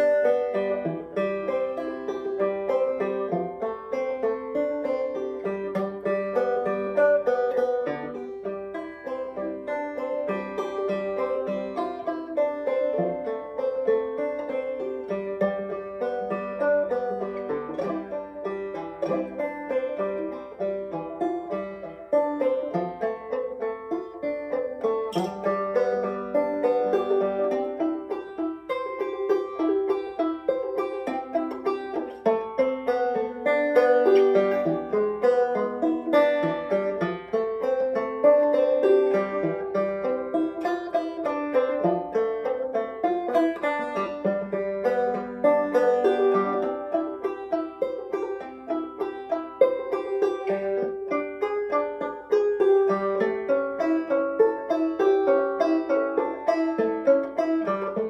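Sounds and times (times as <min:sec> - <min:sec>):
banjo picking: 0:00.0 - 0:58.0.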